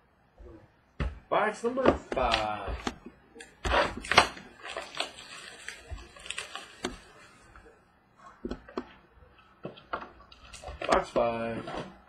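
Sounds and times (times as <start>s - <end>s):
plastic wrap crinkling: 3.4s - 7.8s, 9.4s - 12.0s.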